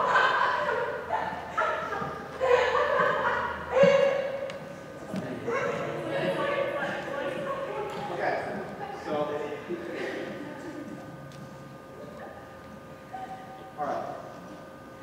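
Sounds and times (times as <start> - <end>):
children calling and chattering: 0.0 - 11.1.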